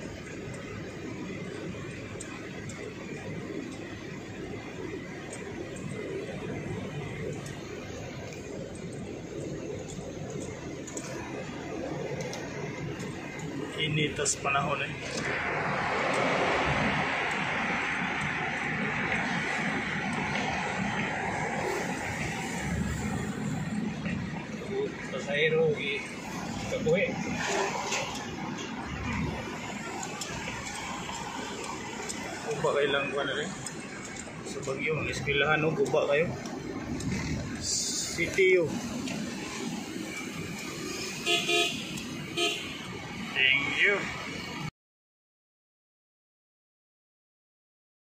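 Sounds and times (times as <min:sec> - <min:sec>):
car engine and road noise: 0:00.0 - 0:44.7
vehicle horn toots: 0:41.2 - 0:42.9.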